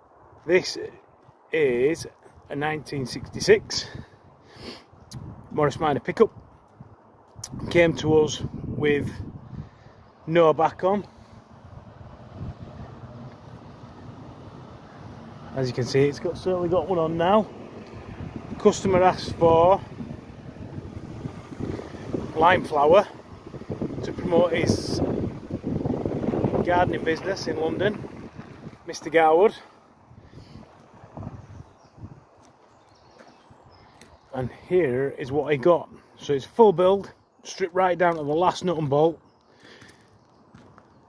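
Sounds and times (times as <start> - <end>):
distant engine hum: 9.4 - 32.6
footsteps on gravel: 32.3 - 34.2, 39.7 - 41.0.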